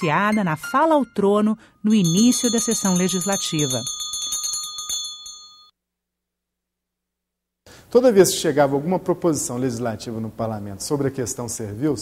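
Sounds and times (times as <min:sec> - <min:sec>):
bell-like ringing tone: 0:01.9 - 0:05.7.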